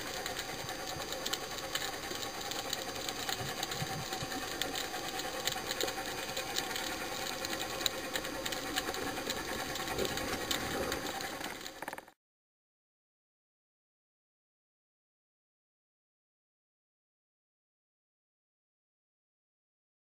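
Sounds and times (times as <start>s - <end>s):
underwater hiss: 0.0s - 11.3s
faint steady hum: 0.0s - 12.1s
small underwater clicks: 0.0s - 12.2s.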